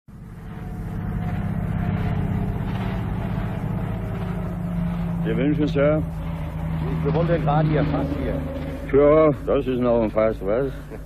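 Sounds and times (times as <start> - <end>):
vehicle engine running: 0.1 - 11.0.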